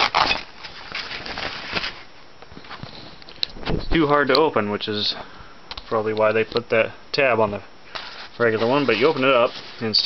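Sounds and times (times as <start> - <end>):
velcro ripping apart: 0.0 - 1.9
nylon bag rustling: 0.0 - 3.2, 8.0 - 10.0.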